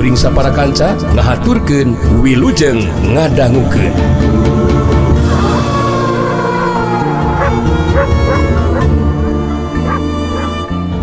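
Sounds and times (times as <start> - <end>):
background music with low tones: 0.0 - 11.0
short yelping calls: 9.9 - 10.5.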